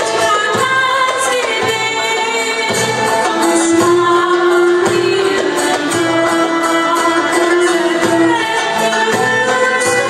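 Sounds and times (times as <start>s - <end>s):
instrumental accompaniment: 0.0s - 10.0s
woman singing: 0.0s - 10.0s.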